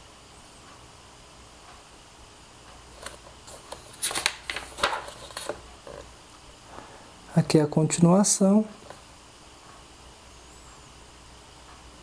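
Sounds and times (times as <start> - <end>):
paper pages rustling: 2.9 - 6.1.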